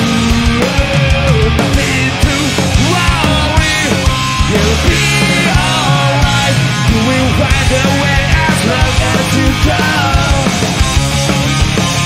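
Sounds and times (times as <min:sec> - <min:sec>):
punk rock band playing live: 0:00.0 - 0:12.0
man singing: 0:00.6 - 0:10.7.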